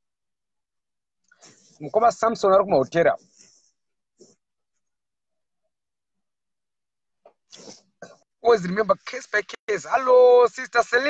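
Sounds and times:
person speaking: 0:07.5 - 0:11.0.

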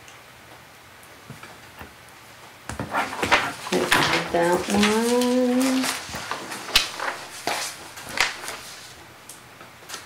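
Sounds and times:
paper rustling and tapping: 0:02.7 - 0:09.0.

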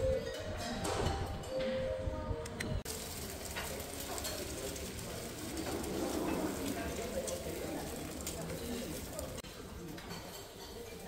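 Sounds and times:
murmur of voices: 0:00.0 - 0:11.0
eggs sizzling in pans: 0:02.8 - 0:11.0
tableware clatter: 0:03.4 - 0:11.0.

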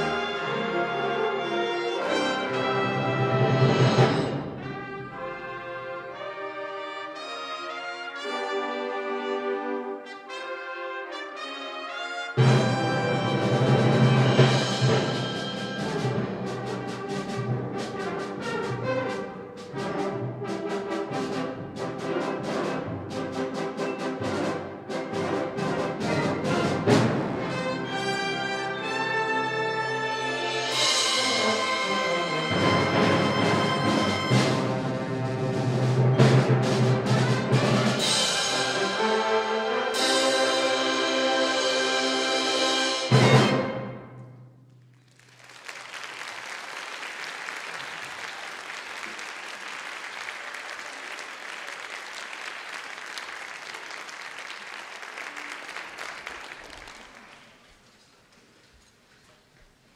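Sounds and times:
concert band playing: 0:12.4 - 0:44.0.

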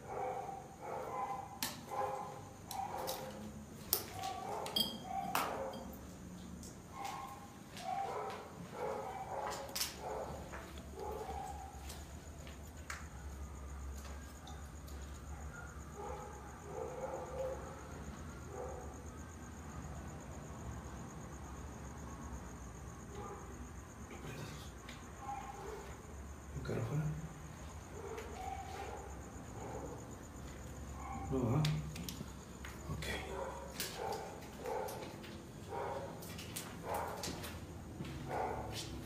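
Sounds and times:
faint dog barking: 0:00.0 - 0:05.9, 0:06.9 - 0:12.2, 0:13.0 - 0:19.1, 0:23.1 - 0:26.2, 0:27.6 - 0:31.9, 0:32.8 - 0:39.0.

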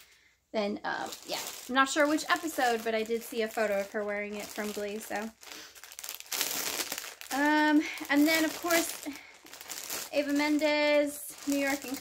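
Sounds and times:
person speaking: 0:00.6 - 0:05.4, 0:10.1 - 0:12.0
packaging crinkling: 0:01.0 - 0:12.0.

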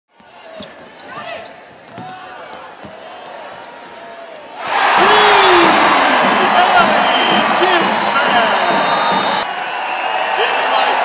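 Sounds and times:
voices in a large arena: 0:00.1 - 0:11.0.

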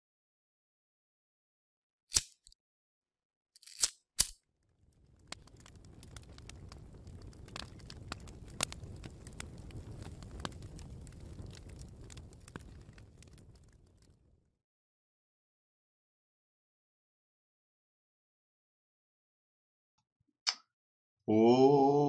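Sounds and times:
scattered crackles: 0:03.6 - 0:14.5.

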